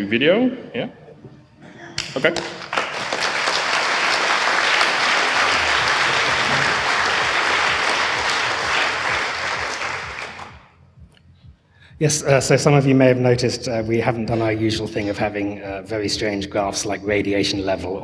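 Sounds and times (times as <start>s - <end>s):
audience applauding: 2.0s - 10.7s.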